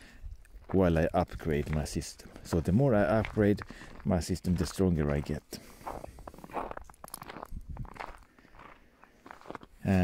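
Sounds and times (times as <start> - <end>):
footsteps on snowy gravel: 0.5 - 10.0.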